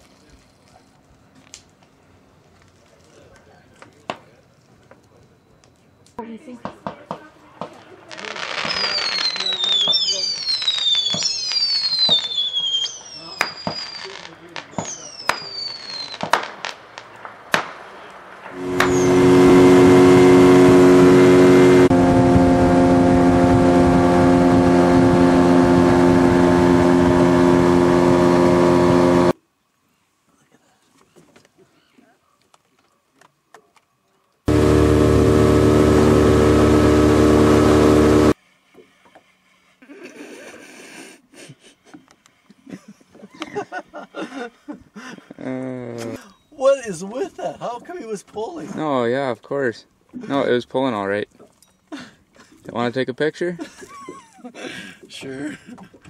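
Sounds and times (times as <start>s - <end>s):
fireworks popping and cracking: 6.6s - 20.8s
fireworks whistling: 7.6s - 29.4s, 34.5s - 38.4s
outboard motor running: 18.6s - 29.4s, 34.5s - 38.4s.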